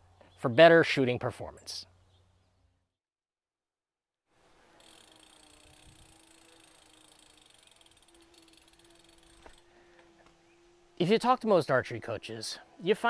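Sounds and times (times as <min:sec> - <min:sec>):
bicycle rolling on pavement: 0:04.4 - 0:11.2
freewheel ticking: 0:04.6 - 0:09.7.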